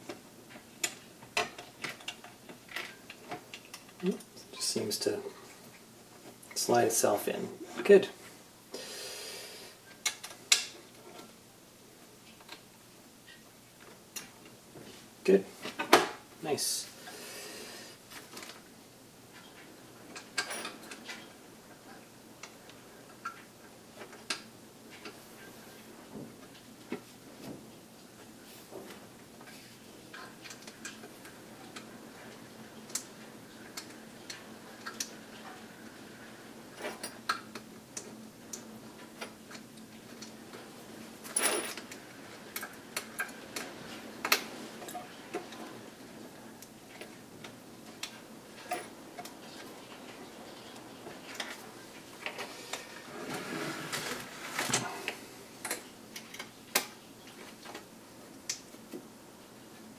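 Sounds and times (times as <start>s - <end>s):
scraping and shuffling: 48.4s - 55.4s.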